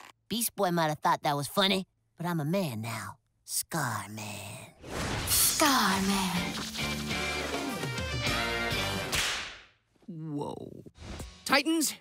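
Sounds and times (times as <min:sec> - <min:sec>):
whip-crack swish: 0:09.0 - 0:09.7.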